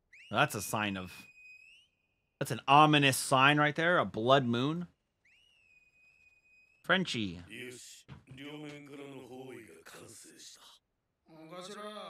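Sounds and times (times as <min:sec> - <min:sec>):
faint high whistle-like tone: 0:00.0 - 0:02.3, 0:05.2 - 0:06.9.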